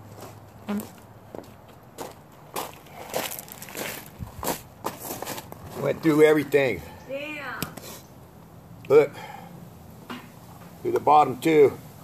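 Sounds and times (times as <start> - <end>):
footsteps crunching on gravel: 0.0 - 6.1.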